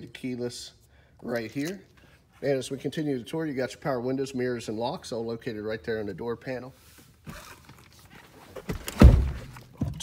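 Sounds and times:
heavy thunk: 0:08.7 - 0:10.0.

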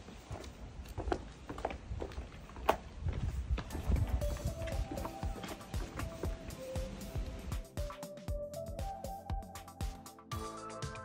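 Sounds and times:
footsteps on path: 0:00.0 - 0:07.8
background music: 0:03.7 - 0:11.0.

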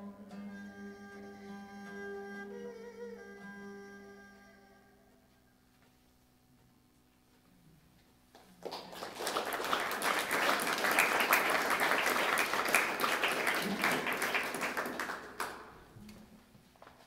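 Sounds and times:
audience applauding: 0:08.4 - 0:15.8.

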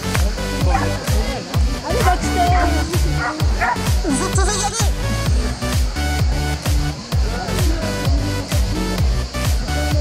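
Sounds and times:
electronic dance music: 0:00.0 - 0:10.0
dog barking and yipping: 0:00.7 - 0:01.0, 0:02.4 - 0:03.9.

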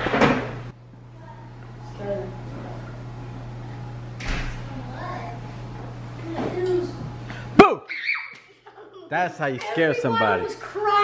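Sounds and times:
child shouting: 0:07.9 - 0:08.4, 0:09.8 - 0:11.0
high laughter: 0:08.0 - 0:09.2.

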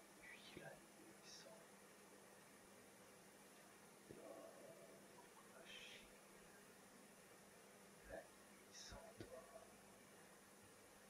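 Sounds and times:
low steady hum: 0:00.0 - 0:11.0
person whispering: 0:00.2 - 0:01.6, 0:04.1 - 0:06.1, 0:08.1 - 0:09.7.

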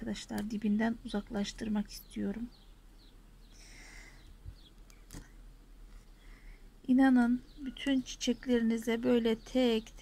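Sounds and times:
bird chirp: 0:00.0 - 0:10.0.

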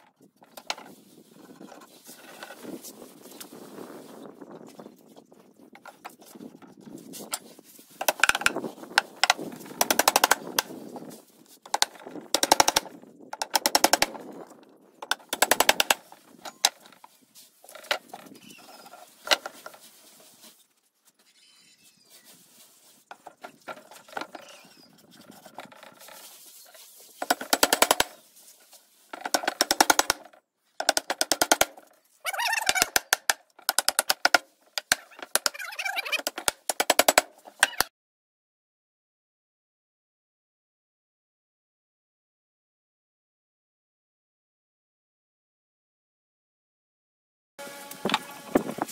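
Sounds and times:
hammer tapping nails into wood: 0:29.2 - 0:30.2, 0:30.8 - 0:31.8.

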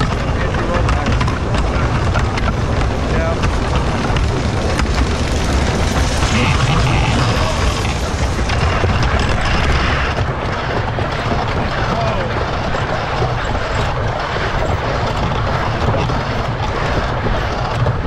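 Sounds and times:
roller coaster rumbling on wooden track: 0:00.0 - 0:18.0.

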